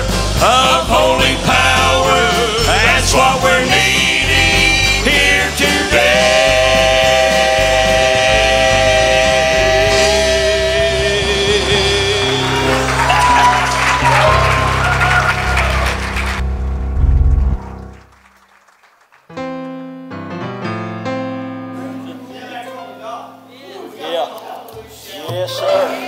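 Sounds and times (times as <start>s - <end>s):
male vocal quartet singing: 0.0s - 14.4s
scattered applause: 12.2s - 16.4s, 17.7s - 19.4s.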